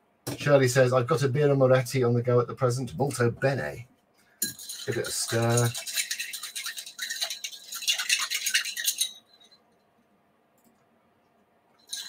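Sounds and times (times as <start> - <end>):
ice clinking in a stirred drink: 4.4 - 9.6, 11.8 - 12.0.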